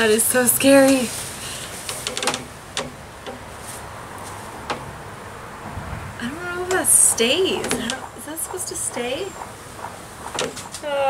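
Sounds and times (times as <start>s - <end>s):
hammock suspension creaking and clicking: 0.0s - 5.7s, 6.6s - 11.0s.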